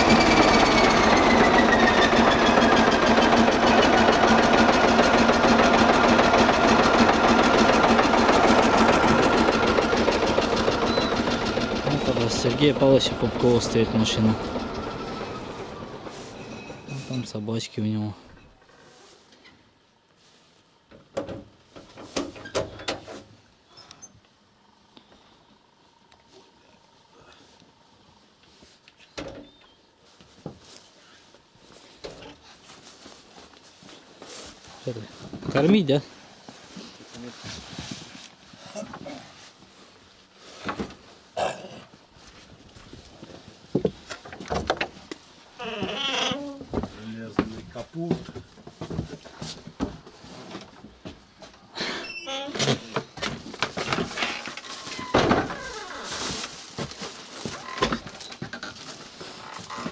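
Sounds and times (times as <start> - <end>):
voices: 11.8 - 18.2.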